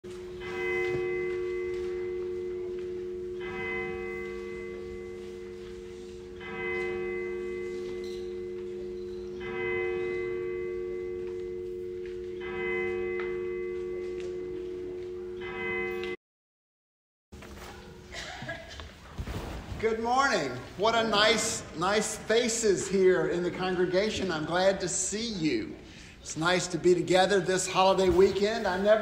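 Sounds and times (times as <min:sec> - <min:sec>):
church bell tolling: 0:00.1 - 0:16.2, 0:19.9 - 0:29.0.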